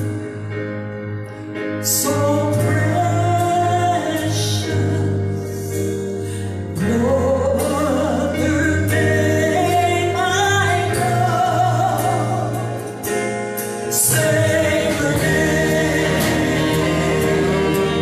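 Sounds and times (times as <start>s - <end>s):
live band playing: 0.0s - 18.0s
steady low bass: 8.4s - 18.0s
women singing gospel song: 14.0s - 18.0s.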